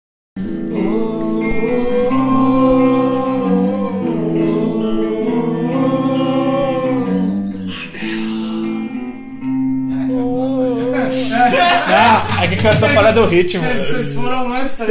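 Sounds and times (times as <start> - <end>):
electric guitar chords: 0.4 - 14.4
bass guitar: 0.4 - 14.5
man singing: 0.6 - 9.2, 10.0 - 14.7.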